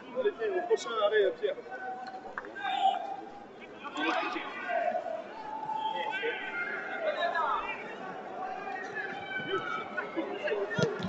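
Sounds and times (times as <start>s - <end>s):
players shouting and calling: 2.0s - 11.0s.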